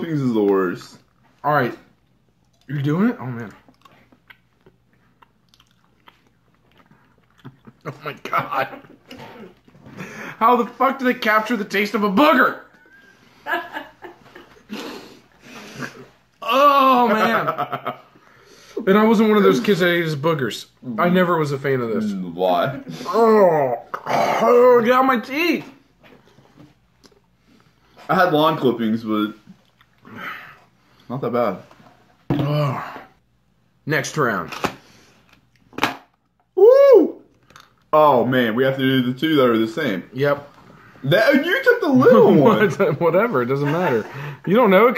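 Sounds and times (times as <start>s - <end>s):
mouth chewing wet clicks: 3.4s - 7.9s
person saying oh in disgust: 16.4s - 17.4s, 36.6s - 37.2s.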